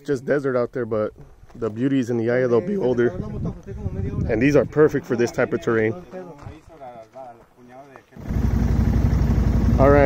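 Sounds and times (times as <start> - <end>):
atv engine idling: 8.2 - 10.0.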